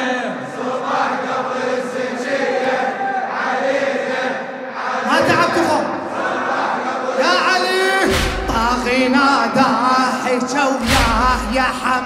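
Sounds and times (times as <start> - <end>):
crowd of men chanting: 0.0 - 12.0.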